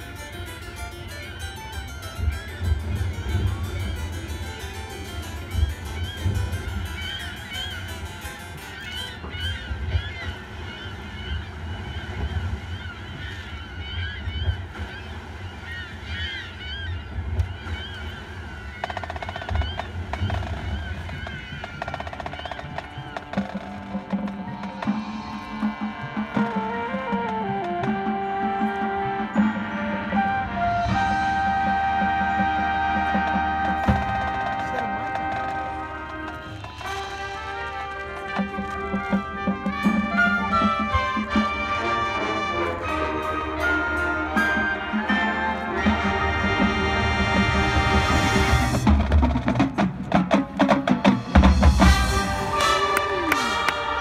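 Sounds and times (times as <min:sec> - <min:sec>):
marching band playing: 0:00.0 - 0:09.8, 0:18.8 - 0:54.0.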